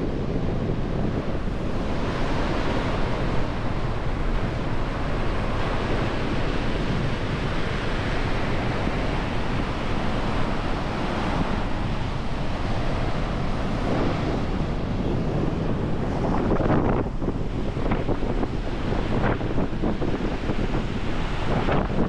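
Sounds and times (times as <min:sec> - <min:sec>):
ocean surf breaking: 0:00.0 - 0:22.0
wind buffeting microphone: 0:00.0 - 0:22.0.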